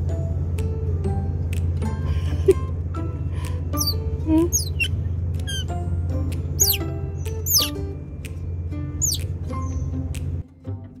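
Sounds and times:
background music with low bass: 0.0 - 11.0
baby otter squeaking: 3.8 - 5.7, 6.6 - 6.8, 7.4 - 7.8, 9.0 - 9.2.

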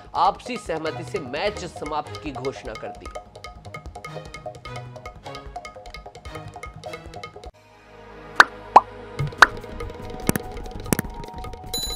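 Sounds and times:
background news music: 0.0 - 11.9.

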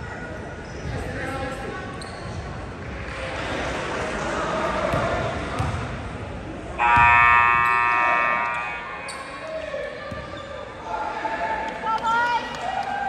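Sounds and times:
chatter in a gym: 0.0 - 13.0
scoreboard buzzer: 6.8 - 9.0.

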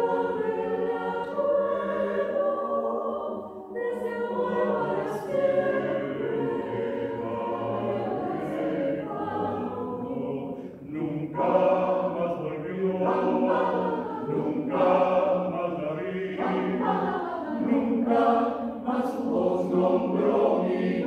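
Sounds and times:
mixed choir singing a cappella: 0.0 - 21.0.

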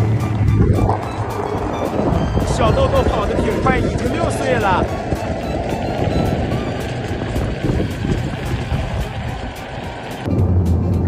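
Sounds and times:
background music: 0.0 - 11.0
vehicle rumble and road noise: 0.0 - 11.0.

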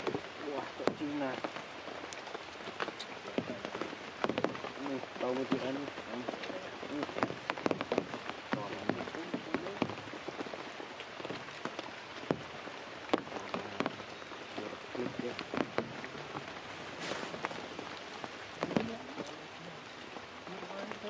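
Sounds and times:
water drops ticking: 0.0 - 16.6
rain on rocks and leaves: 0.0 - 21.0.

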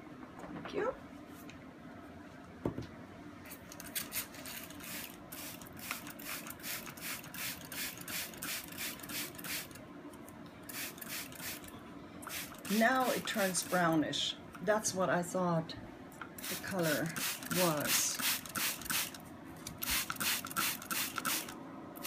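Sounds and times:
spray bottle hissing sprays: 16.4 - 19.2, 19.8 - 21.6.

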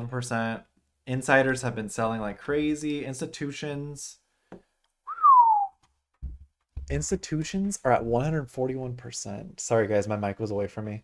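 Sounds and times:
short gliding whistle: 5.1 - 5.8
microphone handling thumps: 6.2 - 7.2.

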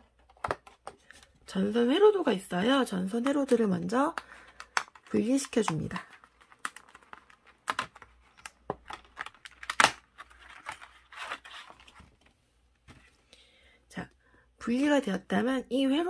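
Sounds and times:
cardstock tearing and crackling: 4.5 - 12.0.

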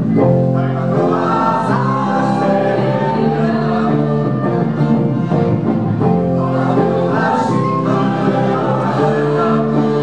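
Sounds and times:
accordion and guitar: 0.0 - 10.0
group singing in chorus: 0.1 - 10.0.

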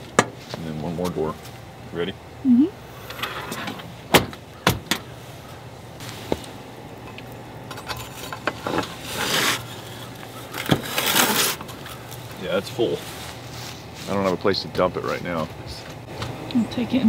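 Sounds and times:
rake scraping ash: 6.0 - 15.3.

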